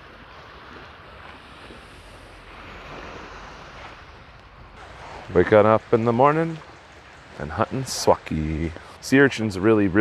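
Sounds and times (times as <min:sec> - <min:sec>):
small waves washing over rocks: 0:00.0 - 0:09.1
wind: 0:00.0 - 0:10.0.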